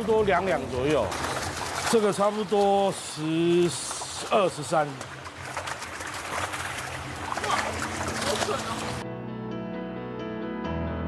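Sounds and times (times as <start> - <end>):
water splashing and running: 0.0 - 9.0.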